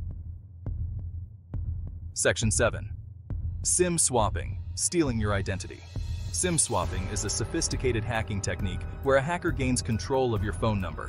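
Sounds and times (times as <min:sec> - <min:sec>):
heartbeat-style bass pulse: 0:00.0 - 0:11.0.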